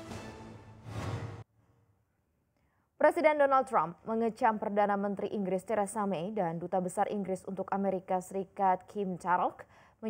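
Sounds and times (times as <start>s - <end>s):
news theme jingle: 0.0s - 1.4s.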